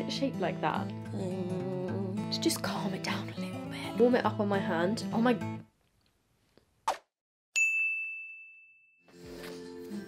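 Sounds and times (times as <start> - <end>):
bright chime ding: 7.6 - 9.1.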